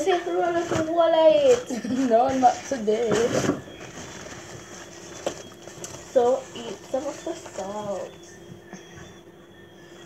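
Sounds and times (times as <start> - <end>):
person's voice: 0.0 - 3.5, 6.2 - 8.2.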